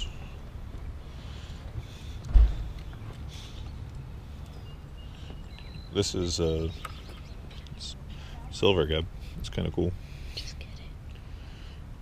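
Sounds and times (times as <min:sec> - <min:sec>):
low background rumble: 0:00.0 - 0:12.0
faint whispered speech: 0:10.4 - 0:11.0.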